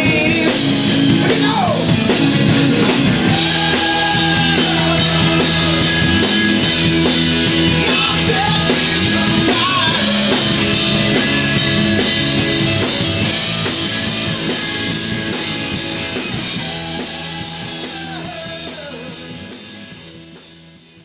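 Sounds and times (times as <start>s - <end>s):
live rock band playing: 0.0s - 21.0s.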